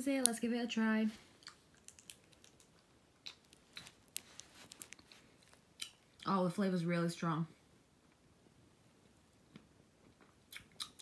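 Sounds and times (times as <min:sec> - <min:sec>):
chewing taffy clicks: 0:01.4 - 0:06.0.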